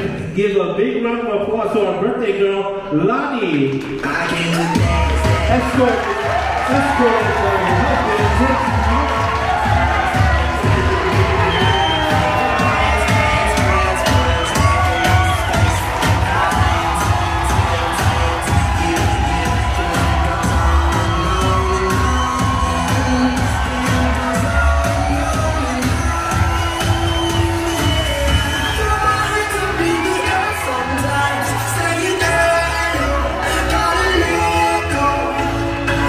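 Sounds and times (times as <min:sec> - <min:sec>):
pop music with singer: 0:00.0 - 0:36.0
crowd cheering: 0:03.7 - 0:36.0.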